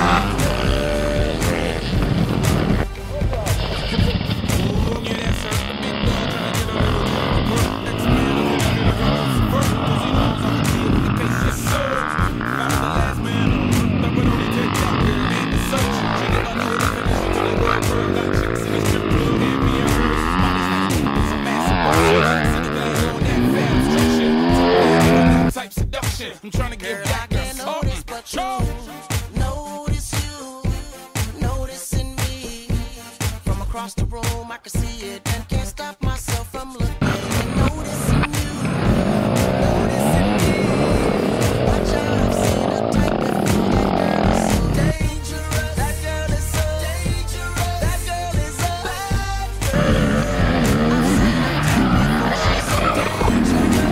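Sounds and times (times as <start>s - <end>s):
dirt bike engines revving: 0.0s - 25.5s, 37.0s - 53.9s
background music with steady beat: 0.0s - 53.9s
song playing: 0.0s - 53.9s.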